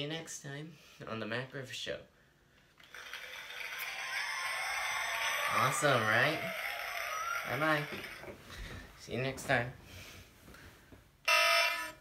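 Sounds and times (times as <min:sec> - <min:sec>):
toy remote electronic buzzer: 0:02.8 - 0:08.3, 0:11.3 - 0:12.0.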